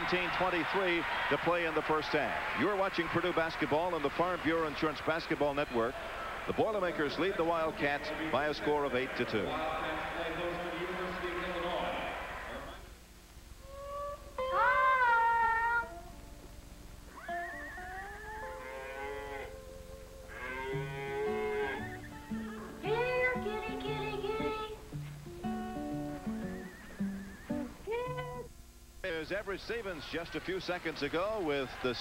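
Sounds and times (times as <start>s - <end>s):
boy singing with vibrato: 13.8s - 16.1s, 22.5s - 24.8s
plucked strings: 22.2s - 28.5s.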